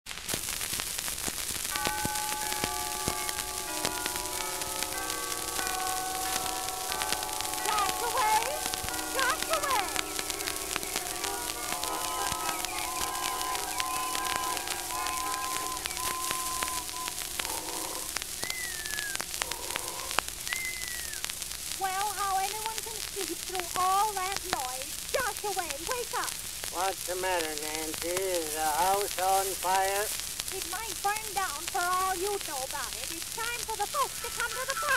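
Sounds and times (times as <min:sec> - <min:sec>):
record crackle and hiss: 0:00.0 - 0:34.9
old phonograph music: 0:00.1 - 0:34.9.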